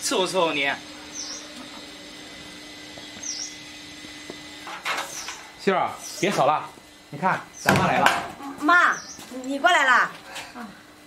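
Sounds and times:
steady low hum: 0:00.0 - 0:11.0
small bird chirp: 0:01.1 - 0:01.5, 0:03.2 - 0:03.6, 0:08.9 - 0:09.3.

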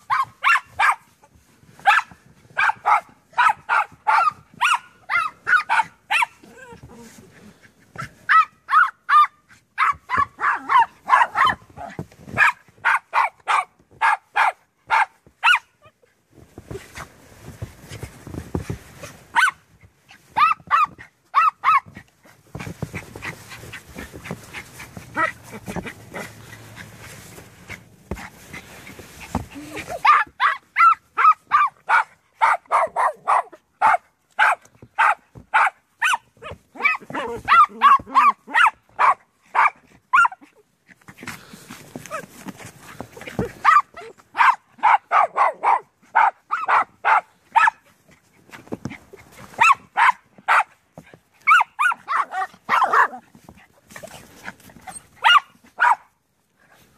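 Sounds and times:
small dogs barking: 0:00.0 - 0:16.0, 0:19.0 - 0:40.6, 0:41.2 - 0:48.1, 0:48.9 - 0:53.3, 0:53.9 - 0:56.2
rustling scraping noise: 0:00.0 - 0:56.9.

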